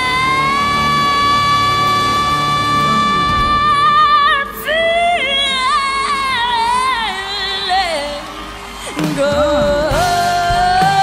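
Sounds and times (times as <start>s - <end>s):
backing band playing: 0.0s - 4.7s, 9.0s - 11.0s
girl singing long high note: 0.0s - 7.8s.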